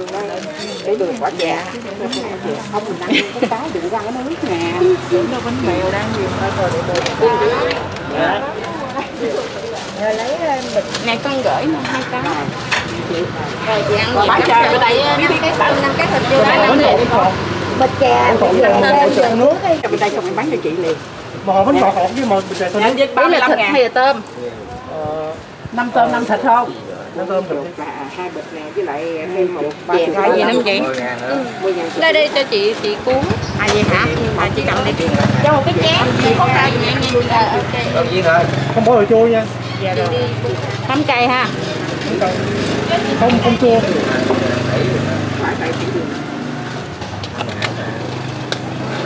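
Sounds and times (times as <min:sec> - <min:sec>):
people talking: 0:00.0 - 0:46.2.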